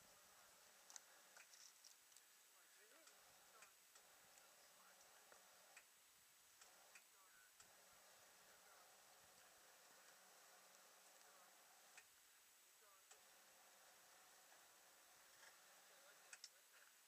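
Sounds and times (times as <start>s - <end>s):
faint distant voices: 0.0s - 17.0s
faint irregular ticks and clicks: 0.0s - 17.0s.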